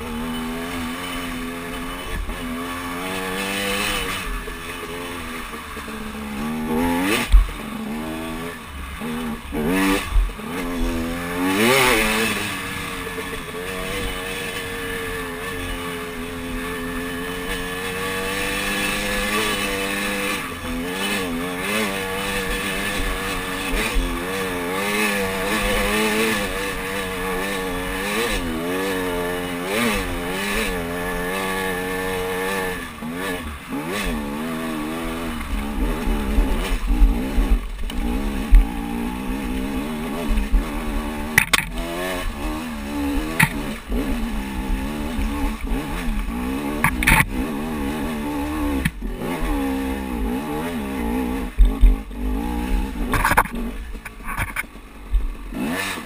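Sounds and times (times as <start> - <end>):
dirt bike engine revving: 0.0 - 56.0
sharp knocks: 41.4 - 41.8.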